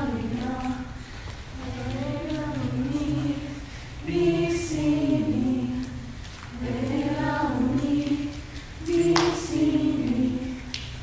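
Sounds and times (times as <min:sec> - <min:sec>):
voices singing together: 0:00.0 - 0:11.0.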